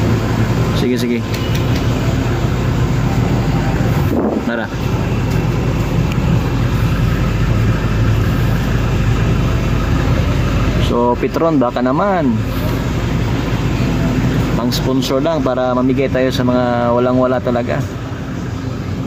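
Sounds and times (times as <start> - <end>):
vehicle engine idling: 0.0 - 19.0.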